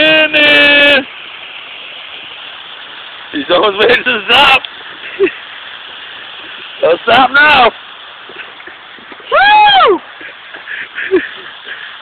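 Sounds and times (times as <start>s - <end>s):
waterfall rushing: 0.0s - 12.0s.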